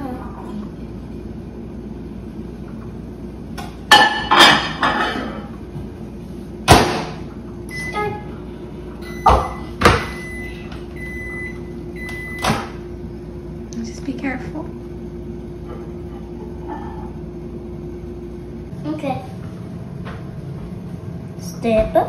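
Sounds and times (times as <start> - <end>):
keypad beeps: 9.0 - 12.5.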